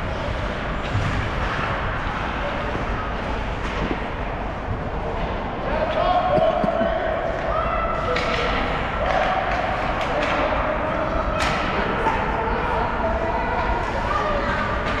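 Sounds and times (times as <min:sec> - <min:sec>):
hockey sticks and puck clacking: 0:00.4 - 0:04.3, 0:06.4 - 0:12.3, 0:13.6 - 0:15.0.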